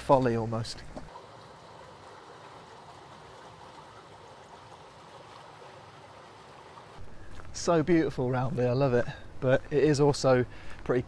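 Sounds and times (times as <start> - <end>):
water flowing over stone: 1.1 - 7.8.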